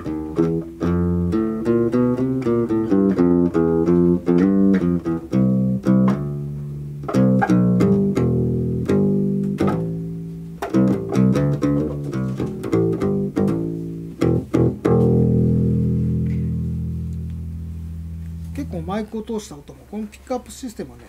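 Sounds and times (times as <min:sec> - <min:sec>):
finger-plucked bass line: 0:00.0 - 0:19.8.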